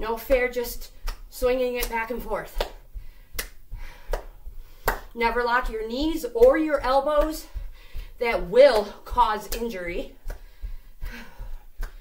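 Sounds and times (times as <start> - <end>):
sharp hand claps: 0.3 - 5.1, 8.7 - 10.5, 11.8 - 12.0.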